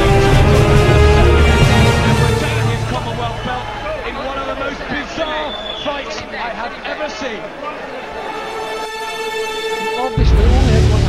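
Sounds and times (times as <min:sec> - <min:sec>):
low music: 0:00.0 - 0:05.2, 0:08.2 - 0:11.0
indistinct talking: 0:00.0 - 0:11.0.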